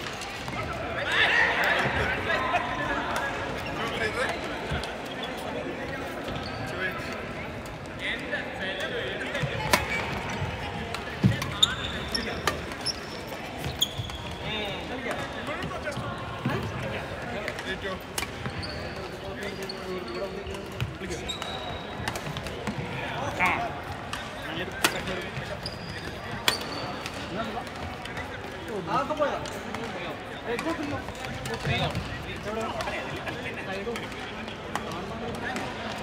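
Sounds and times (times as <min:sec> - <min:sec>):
players' voices: 0:00.0 - 0:36.0
shoes squeaking on wooden court: 0:03.0 - 0:07.8, 0:09.2 - 0:28.4, 0:29.9 - 0:35.6.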